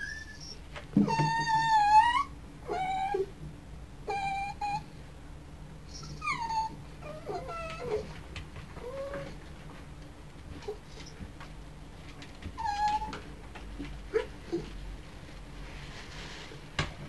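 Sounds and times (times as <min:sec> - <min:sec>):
dog whimpering: 0:00.0 - 0:03.3, 0:04.1 - 0:04.9, 0:05.9 - 0:08.2, 0:08.8 - 0:09.4, 0:12.6 - 0:13.2, 0:14.1 - 0:14.8.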